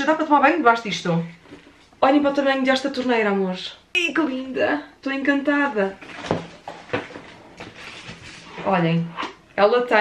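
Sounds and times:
knocks and handling noise: 6.0s - 8.5s.

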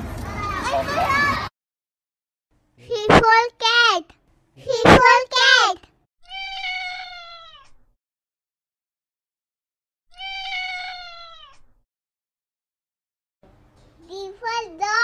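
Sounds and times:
cat meowing: 6.2s - 7.8s, 10.1s - 11.6s.

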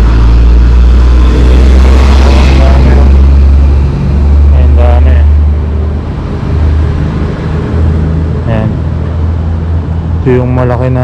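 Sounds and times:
low rumble of road traffic: 0.0s - 11.0s
vehicle passing: 0.0s - 11.0s.

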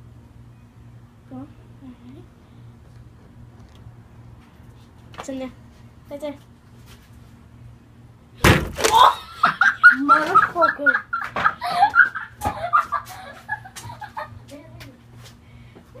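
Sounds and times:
loud smack: 8.4s - 9.0s.

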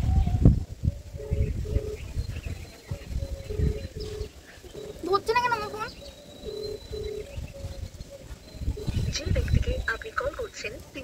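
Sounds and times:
phone ringback tone: 3.5s - 5.0s, 6.4s - 7.4s, 8.7s - 9.6s.

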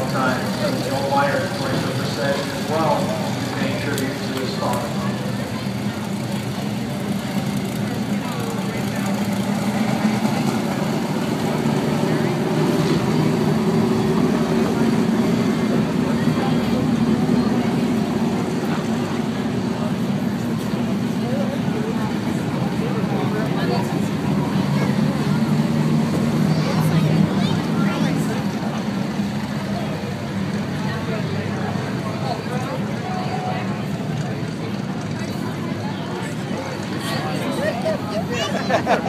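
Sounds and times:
race car engines droning: 0.0s - 39.0s
voices in background: 0.0s - 39.0s.

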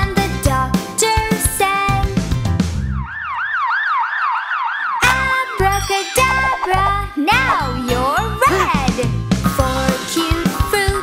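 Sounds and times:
bouncy children's song music: 0.0s - 2.8s, 5.0s - 11.0s
cartoon ambulance siren: 2.7s - 7.6s.

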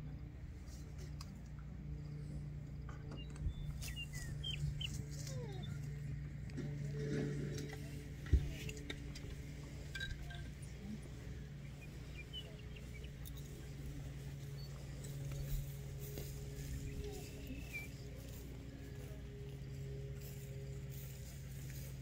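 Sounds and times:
steady low hum: 0.0s - 22.0s
bird chirps: 3.1s - 5.8s, 11.6s - 18.0s.

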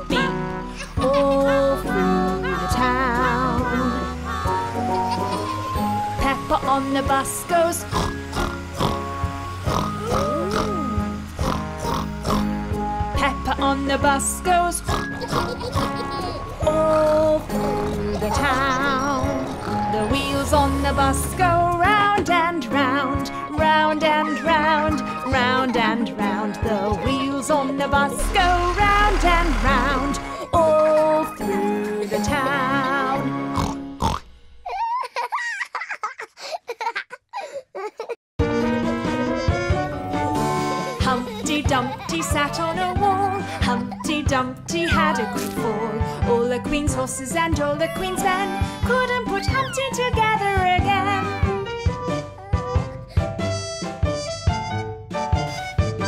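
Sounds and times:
bouncy children's song music: 0.0s - 33.9s, 38.4s - 56.0s
cartoon child giggling: 0.1s - 5.8s, 15.0s - 19.6s, 24.1s - 33.3s, 34.6s - 38.2s, 40.7s - 45.7s, 47.6s - 50.1s
cartoon pig snorting: 7.9s - 9.0s, 9.7s - 12.5s, 14.8s - 16.4s, 17.0s - 20.0s, 28.1s - 30.5s.

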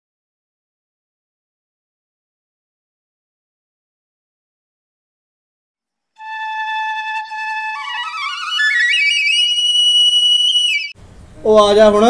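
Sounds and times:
flute holding high note: 6.2s - 11.0s.

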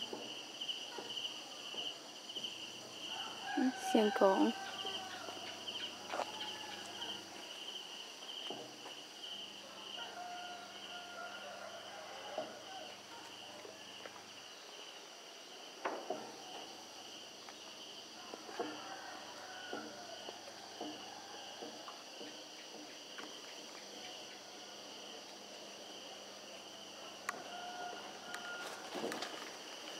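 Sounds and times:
insects trilling: 0.0s - 29.9s.

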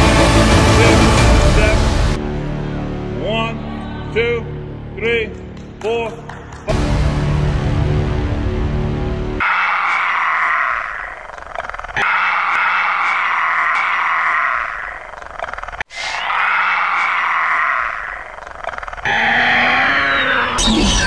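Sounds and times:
harsh animal-like roaring cry: 9.4s - 11.3s, 12.0s - 15.1s, 16.0s - 18.4s, 19.0s - 20.8s.

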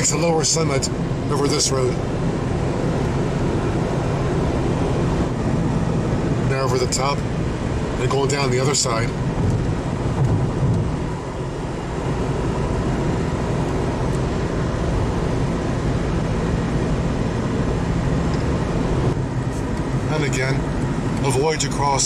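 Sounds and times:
car road noise from inside: 0.0s - 22.0s.

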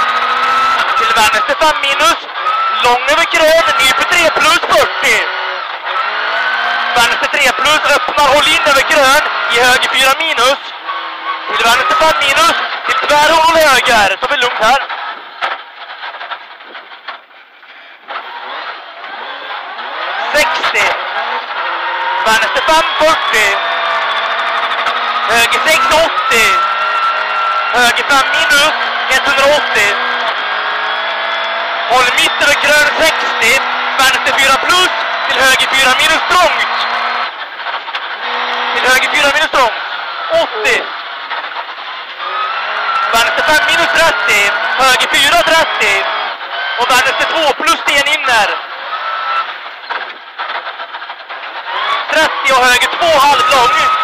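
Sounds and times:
rally car engine: 0.0s - 54.0s
tyres on gravel: 0.0s - 54.0s.

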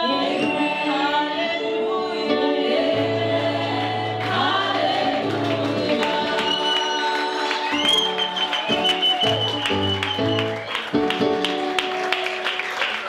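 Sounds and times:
women singing: 0.0s - 8.2s
acoustic guitar: 0.0s - 12.2s
bass accompaniment: 2.1s - 7.0s, 7.7s - 12.4s.

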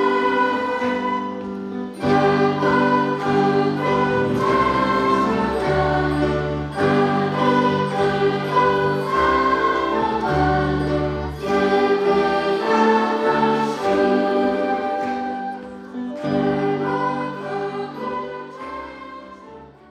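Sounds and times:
flute ensemble with brass and keyboard: 0.0s - 11.4s, 13.2s - 19.9s.

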